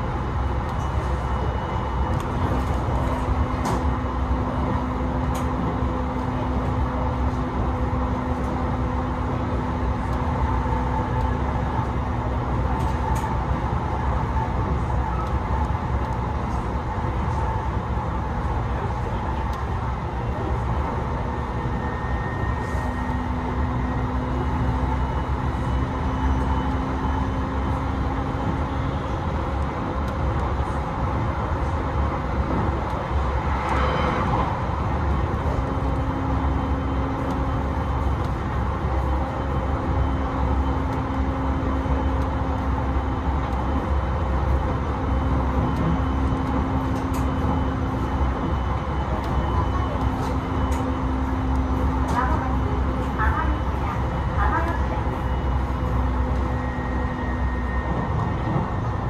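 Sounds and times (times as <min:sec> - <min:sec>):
train running rumble: 0:00.0 - 0:59.0.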